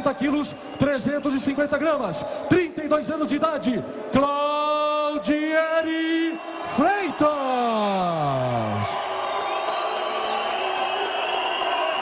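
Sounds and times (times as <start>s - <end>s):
arena crowd cheering: 0.0s - 12.0s.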